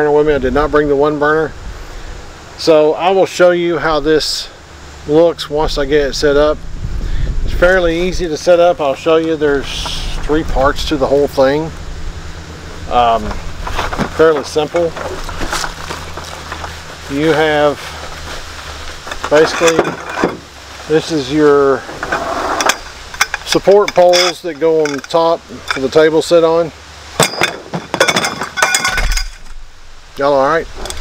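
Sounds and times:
wind rumble on microphone: 0:05.6 - 0:14.3
metal poles clinking: 0:12.9 - 0:29.6.

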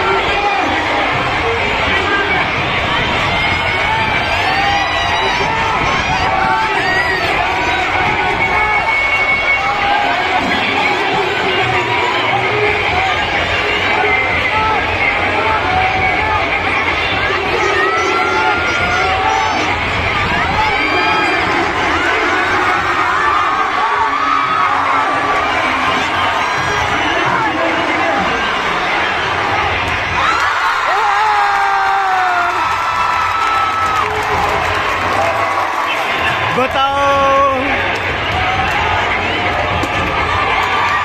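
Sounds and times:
children cheering and shouting: 0:00.0 - 0:41.0.

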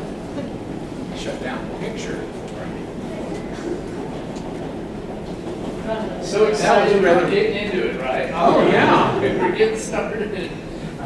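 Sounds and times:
audience murmuring: 0:00.0 - 0:11.0
low room rumble: 0:00.0 - 0:11.0.

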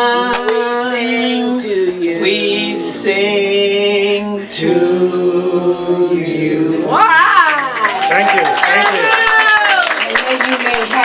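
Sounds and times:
group singing unaccompanied: 0:00.0 - 0:07.2.

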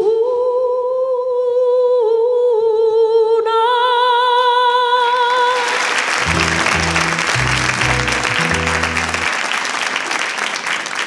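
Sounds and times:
woman singing with vibrato: 0:00.0 - 0:05.6.

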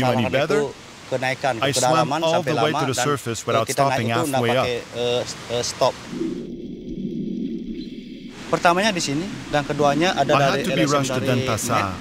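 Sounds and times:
muffled underwater rush: 0:04.4 - 0:12.0.

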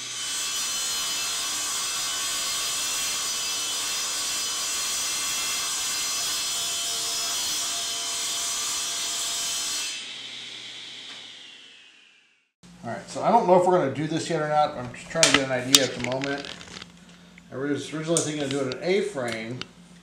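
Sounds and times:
table saw cutting wood: 0:00.0 - 0:12.4.

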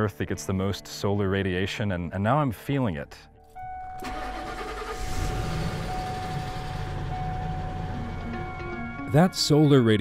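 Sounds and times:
pickup truck driving past: 0:04.1 - 0:09.0
soft music with held note: 0:06.2 - 0:10.0.

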